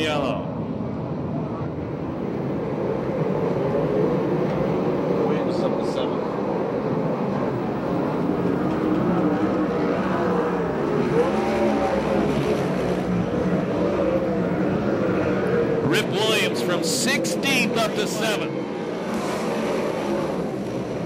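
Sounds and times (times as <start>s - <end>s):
cars passing by: 0.0s - 21.0s
race car engines running at low revs: 0.0s - 21.0s.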